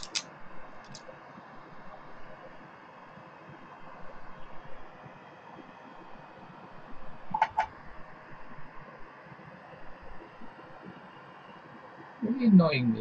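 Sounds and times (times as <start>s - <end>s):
hands handling wiring: 0.0s - 0.2s.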